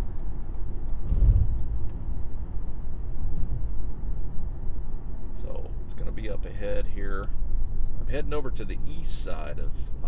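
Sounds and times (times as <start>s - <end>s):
car cabin engine and road noise: 0.0s - 10.0s.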